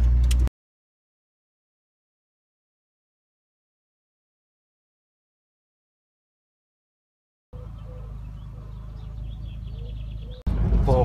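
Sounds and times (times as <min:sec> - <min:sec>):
faint birds chirping: 0:07.5 - 0:10.5
low rumble: 0:07.6 - 0:11.0.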